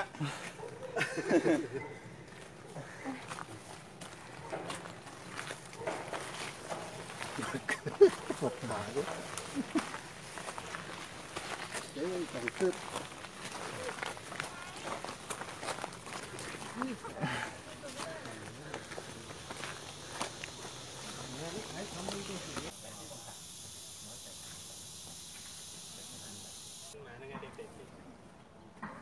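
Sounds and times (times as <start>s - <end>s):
footsteps on dirt trail: 0.0s - 22.8s
faint voices: 11.9s - 28.1s.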